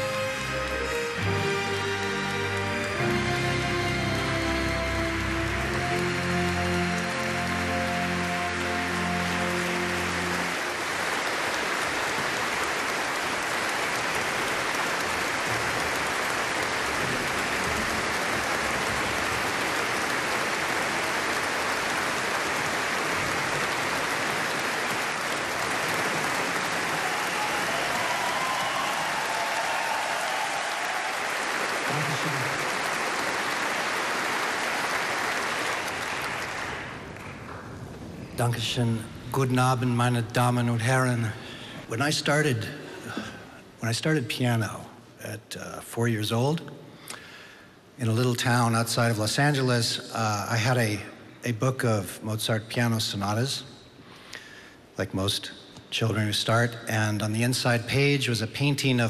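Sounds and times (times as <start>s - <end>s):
orchestra holding chords: 0.0s - 11.5s
audience applauding: 0.0s - 41.6s.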